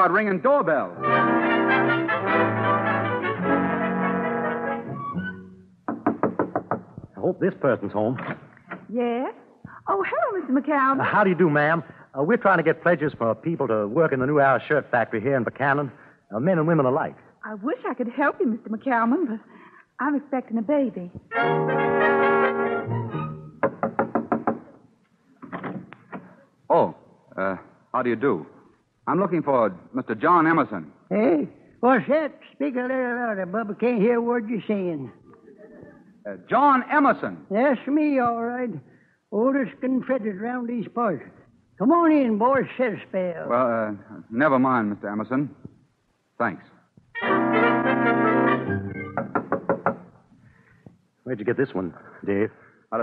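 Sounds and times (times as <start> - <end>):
brass music bridge: 0.9 - 5.7, 21.3 - 23.7, 47.2 - 49.2
knocks on a door: 5.9 - 7.1, 23.6 - 24.8, 49.2 - 50.1.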